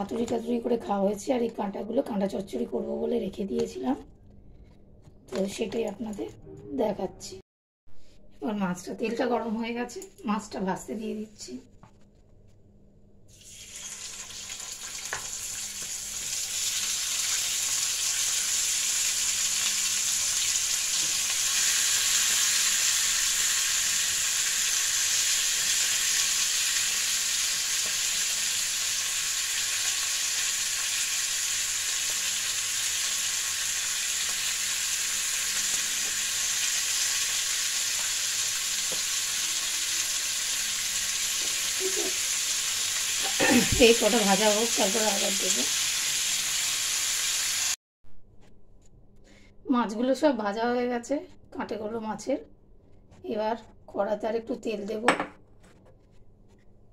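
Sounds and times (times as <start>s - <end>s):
fish sizzling in hot oil: 13.3s - 47.8s.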